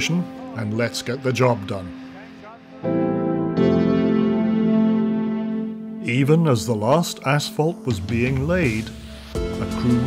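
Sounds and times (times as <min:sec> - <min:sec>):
sustained music chords: 0:00.0 - 0:10.0.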